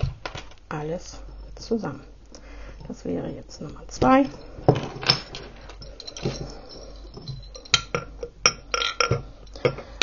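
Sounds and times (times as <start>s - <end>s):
glass bottles and chains clinking: 4.2s - 10.0s.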